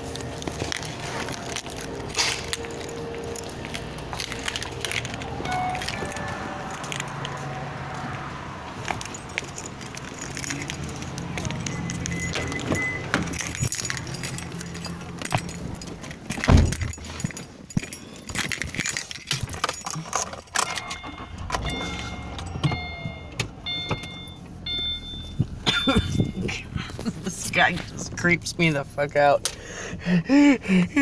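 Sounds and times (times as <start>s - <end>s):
keys jangling: 0.0s - 28.0s
short high beeps: 5.4s - 6.6s, 20.8s - 25.4s
heavy thump: 16.4s - 17.1s.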